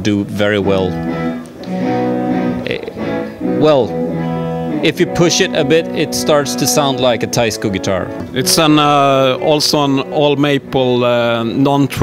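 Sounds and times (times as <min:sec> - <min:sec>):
guitar chords strummed: 0:00.4 - 0:12.0.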